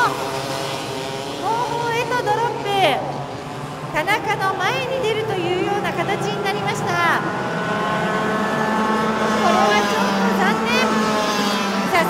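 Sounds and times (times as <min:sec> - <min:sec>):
kart engines buzzing: 0:00.0 - 0:12.0.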